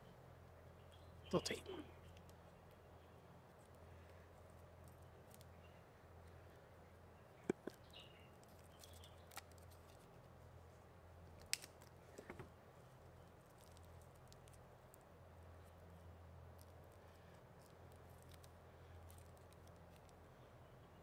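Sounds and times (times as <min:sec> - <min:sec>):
faint low hum: 0:00.0 - 0:21.0
small ticks of tape: 0:04.6 - 0:05.6, 0:07.5 - 0:10.3, 0:11.2 - 0:12.0, 0:13.0 - 0:15.9, 0:16.5 - 0:20.3.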